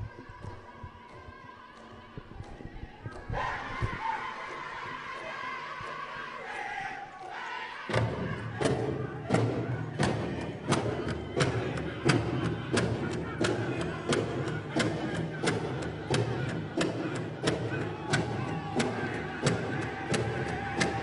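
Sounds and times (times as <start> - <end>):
group singing: 0.0 - 21.0.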